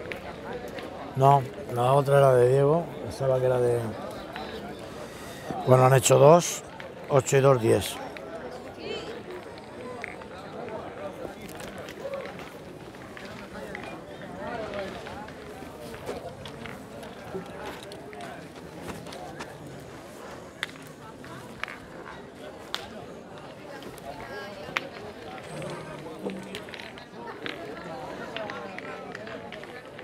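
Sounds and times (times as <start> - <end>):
distant murmur of people talking: 0.0 - 30.0.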